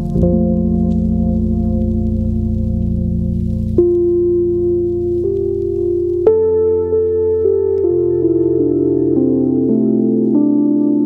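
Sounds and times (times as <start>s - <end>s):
ambient music chords: 0.0s - 11.0s
low drone: 0.0s - 11.0s.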